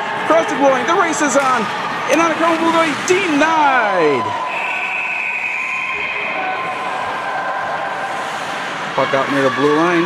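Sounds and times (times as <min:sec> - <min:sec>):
referee's whistle blast: 0:04.4 - 0:06.4
ice rink hiss: 0:06.6 - 0:09.4.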